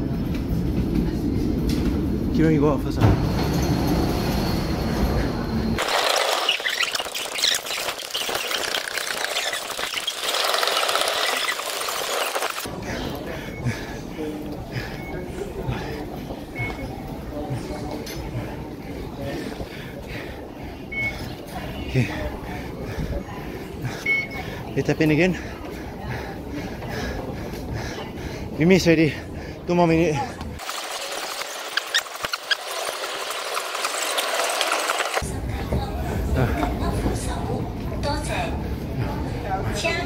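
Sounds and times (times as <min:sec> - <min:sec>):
indistinct voices: 0:02.9 - 0:40.0.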